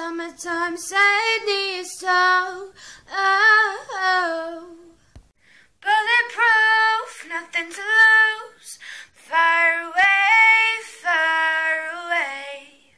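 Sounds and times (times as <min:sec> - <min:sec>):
woman singing a cappella: 0:00.0 - 0:05.1, 0:05.8 - 0:12.9.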